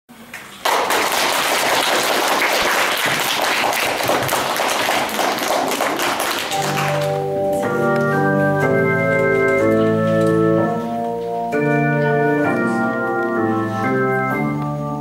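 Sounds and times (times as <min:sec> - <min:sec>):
audience clapping: 0:00.2 - 0:08.1
organ-like keyboard chords: 0:06.5 - 0:15.0.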